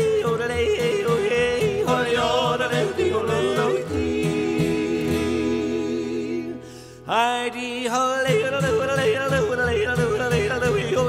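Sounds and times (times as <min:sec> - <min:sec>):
guitar: 0:00.0 - 0:11.0
man yodeling: 0:00.0 - 0:11.0.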